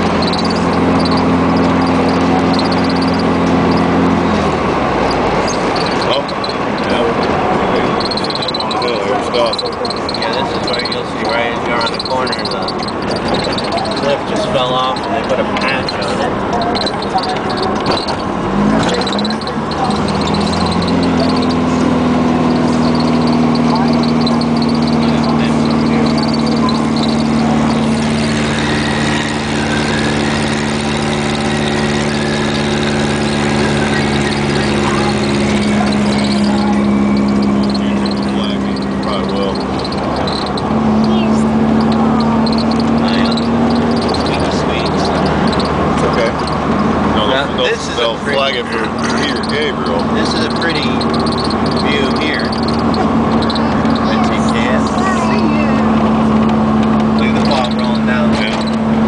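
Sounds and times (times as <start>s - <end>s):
car engine droning: 0.0s - 59.0s
road noise: 0.0s - 59.0s.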